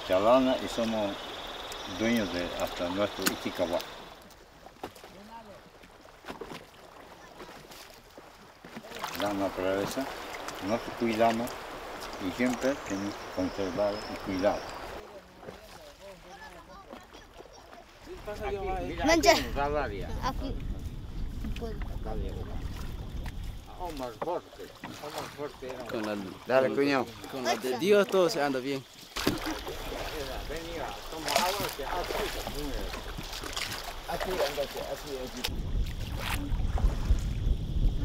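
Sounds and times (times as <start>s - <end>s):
small river boat on water: 0.0s - 38.0s
wind buffeting microphone: 18.1s - 24.4s, 29.6s - 38.0s.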